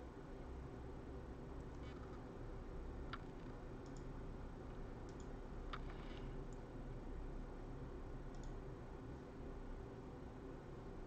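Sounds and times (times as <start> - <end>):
low room hum: 0.0 - 11.0
faint quick clicks: 8.3 - 8.6.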